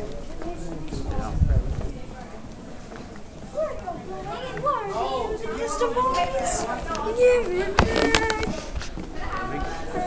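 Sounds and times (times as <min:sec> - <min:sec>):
young voices chattering: 0:00.0 - 0:10.0.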